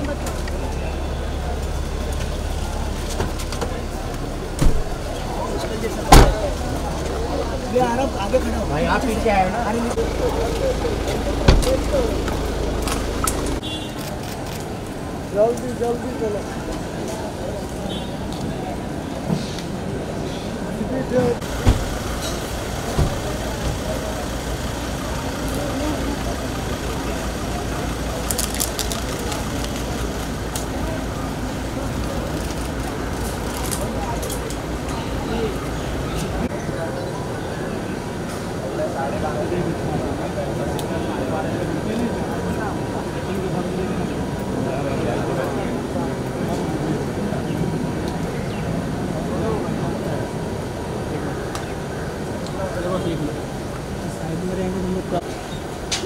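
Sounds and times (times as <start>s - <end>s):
low engine hum: 0.0s - 13.8s, 21.2s - 36.5s
people talking: 0.0s - 56.0s
car door shutting: 4.5s - 5.1s, 6.1s - 6.6s, 11.3s - 13.6s, 21.4s - 24.0s.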